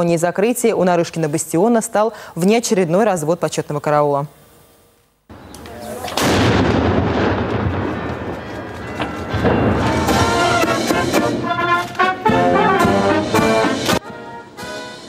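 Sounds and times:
cannon shot echoing: 6.1s - 11.4s
military brass band playing: 7.2s - 15.0s.

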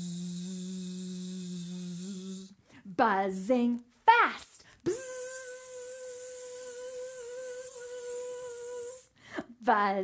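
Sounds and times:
woman imitating a buzzing bee: 0.0s - 2.5s, 4.9s - 9.1s.

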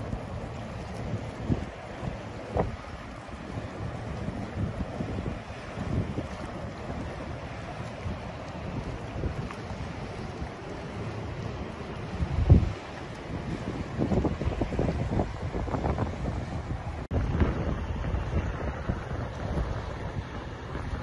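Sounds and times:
water washing along ship hull: 0.0s - 21.0s
wind buffeting microphone: 0.0s - 21.0s.

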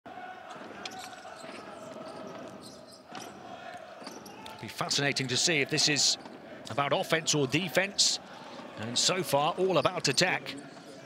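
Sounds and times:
arena background noise: 0.1s - 11.0s
players' voices: 0.1s - 11.0s.

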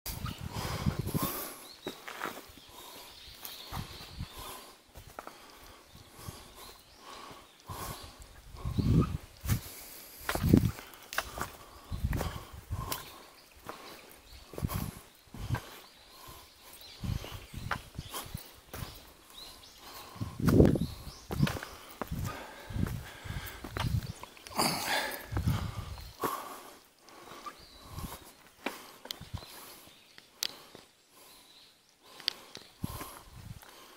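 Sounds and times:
footsteps on forest trail: 0.1s - 33.9s.

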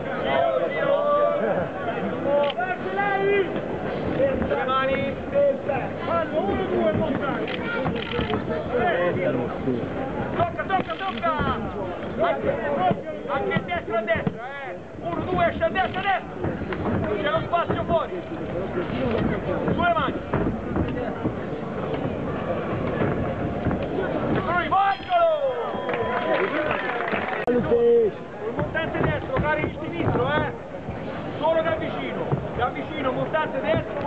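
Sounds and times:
crowd chatter: 0.0s - 34.0s.

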